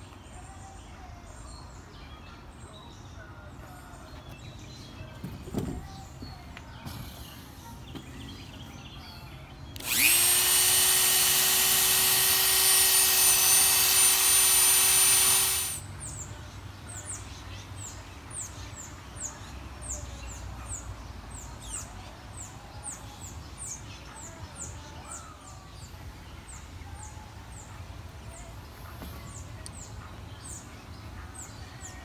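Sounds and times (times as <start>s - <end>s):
rotary tool whining: 9.8s - 15.8s.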